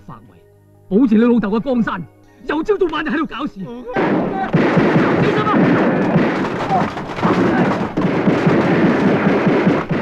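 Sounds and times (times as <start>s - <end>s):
people shouting: 3.9s - 8.0s
gunfire: 4.0s - 10.0s.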